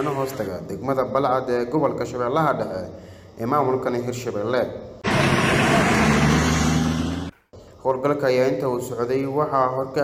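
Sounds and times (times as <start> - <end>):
truck engines running: 5.0 - 7.4
tyre and road noise: 5.0 - 7.4.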